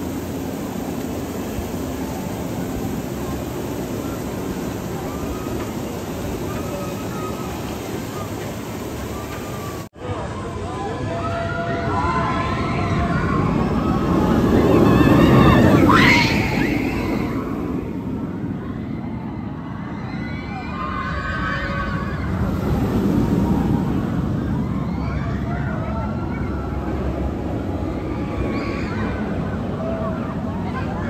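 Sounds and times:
roller coaster train rumbling: 0:00.0 - 0:31.0.

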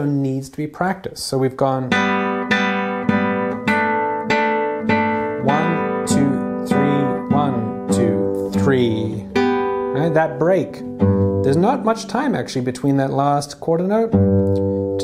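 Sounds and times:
classical guitar plucked notes: 0:01.9 - 0:15.0.

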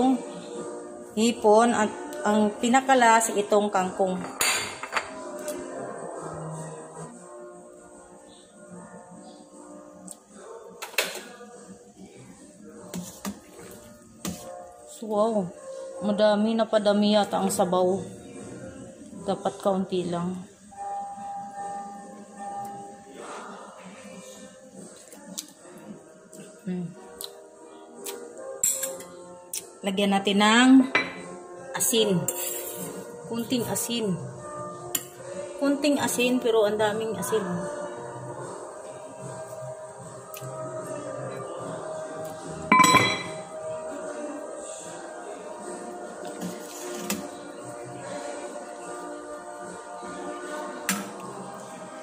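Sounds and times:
background music: 0:00.0 - 0:52.0
utensils and dishes clattering: 0:04.1 - 0:05.4, 0:28.6 - 0:29.2, 0:42.7 - 0:43.6
dish clinking: 0:04.2 - 0:05.2, 0:31.0 - 0:31.4, 0:42.7 - 0:43.5.

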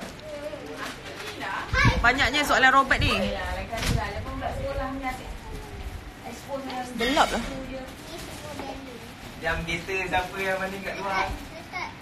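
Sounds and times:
woman talking close to microphone: 0:01.4 - 0:05.5, 0:06.4 - 0:08.0.

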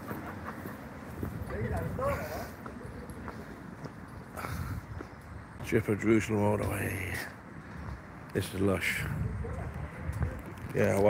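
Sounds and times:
people chattering outdoors: 0:00.0 - 0:11.0.

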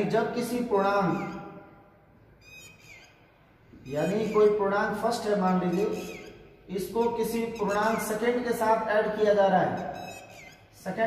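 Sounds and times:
marker squeaking on whiteboard: 0:00.9 - 0:01.5, 0:02.4 - 0:11.0.

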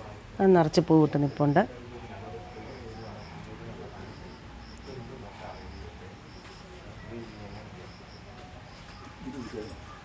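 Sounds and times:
insect chirping: 0:01.1 - 0:10.0.

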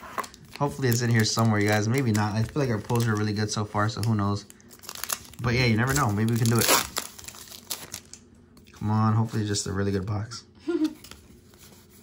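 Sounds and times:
foil wrapper crinkling: 0:00.0 - 0:08.3.

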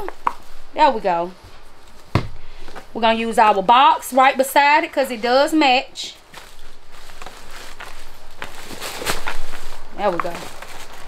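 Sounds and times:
crinkle paper rustling: 0:00.0 - 0:11.0.

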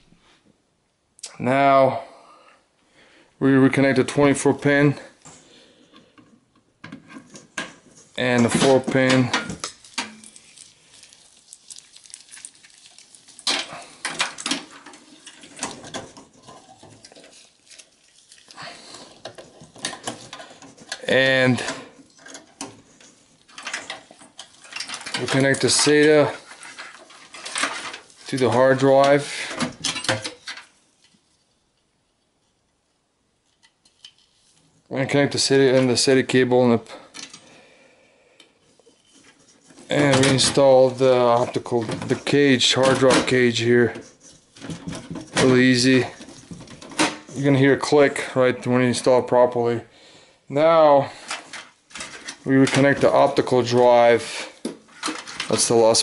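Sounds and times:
wires rustling: 0:03.7 - 0:37.6, 0:38.4 - 0:49.9, 0:50.5 - 0:56.0
cables handled inside metal case: 0:05.9 - 0:32.3, 0:38.7 - 0:49.4, 0:51.2 - 0:56.0.

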